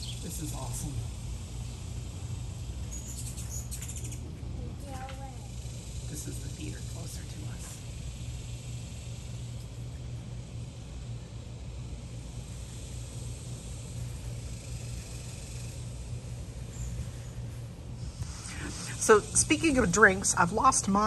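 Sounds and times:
low outdoor rumble: 0.0 - 21.0.

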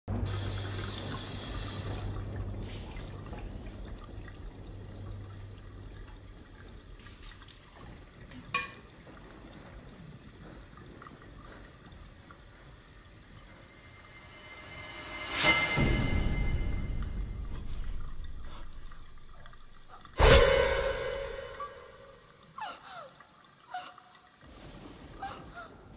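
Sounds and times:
low steady hum: 0.1 - 7.7
faucet running into sink: 0.2 - 14.5.

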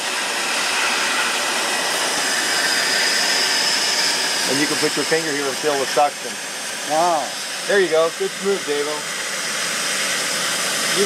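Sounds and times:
shop vacuum running: 0.0 - 11.0.

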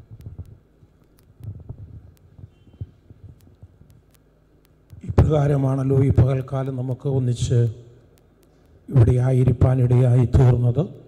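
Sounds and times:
steady hum: 0.0 - 11.0
sharp clicks: 0.1 - 5.1, 7.6 - 8.8.

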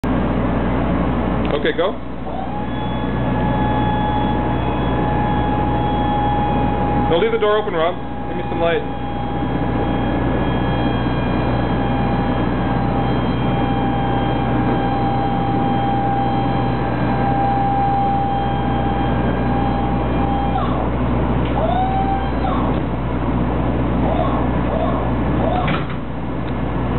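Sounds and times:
lift motor humming and whining: 0.0 - 26.9.

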